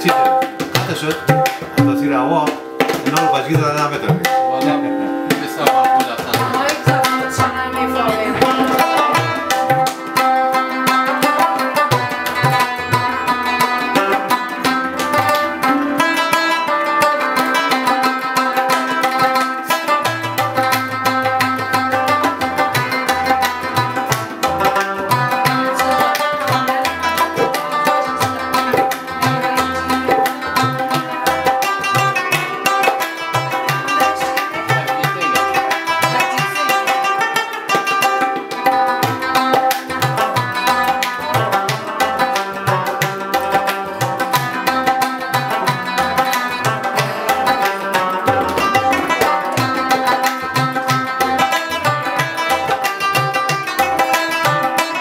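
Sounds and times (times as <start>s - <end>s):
plucked lute melody: 0.0s - 55.0s
tabla rhythm: 0.0s - 55.0s.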